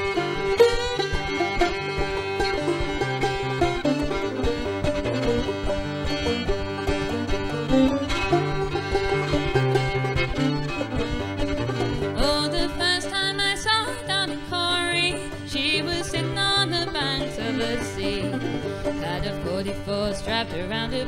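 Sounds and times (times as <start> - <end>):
acoustic guitar strumming: 0.0 - 21.0
banjo and fiddle melody: 0.0 - 21.0.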